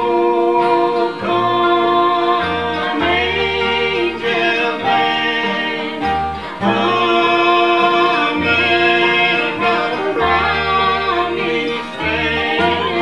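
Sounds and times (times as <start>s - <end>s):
plucked upright bass: 0.0s - 13.0s
strummed acoustic guitars: 0.0s - 13.0s
woman singing: 0.0s - 13.0s.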